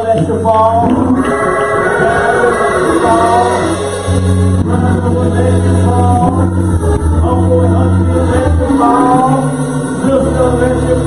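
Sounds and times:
gospel singing: 0.0 - 11.0
low keyboard chords: 0.0 - 11.0.

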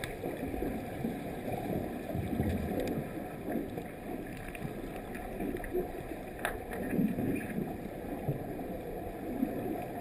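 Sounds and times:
faint clicks: 0.0 - 0.6, 1.6 - 8.4
muffled underwater water churning: 0.0 - 10.0.

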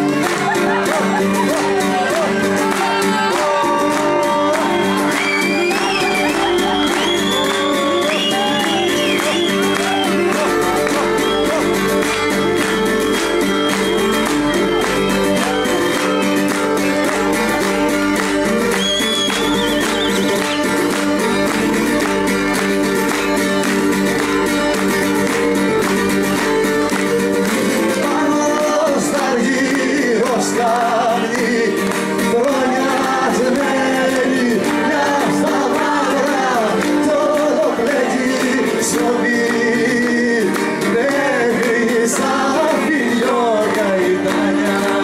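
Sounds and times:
man singing: 0.0 - 12.7, 27.8 - 45.0
live folk band playing: 0.0 - 45.0
plucked lute rhythm: 0.0 - 45.0.

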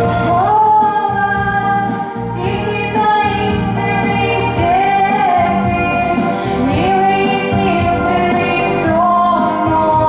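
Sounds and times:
instrumental accompaniment: 0.0 - 10.0
woman singing: 0.2 - 10.0.

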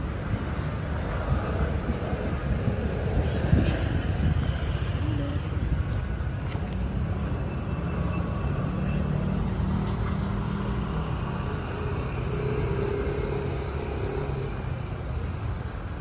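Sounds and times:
low rumble of road traffic: 0.0 - 16.0.

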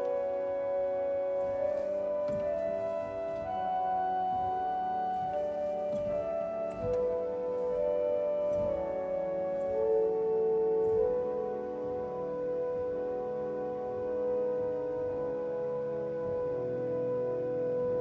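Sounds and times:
pipe organ flute melody: 0.0 - 18.0
soft sustained organ chords: 0.0 - 18.0.

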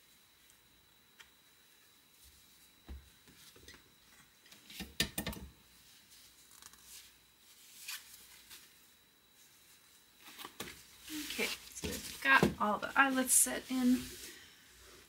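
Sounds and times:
fabric rustling: 9.4 - 14.6.

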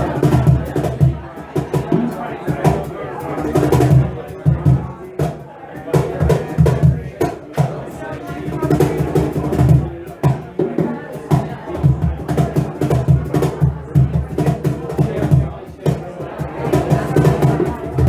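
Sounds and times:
drum kit snare and cymbals: 0.0 - 18.0.

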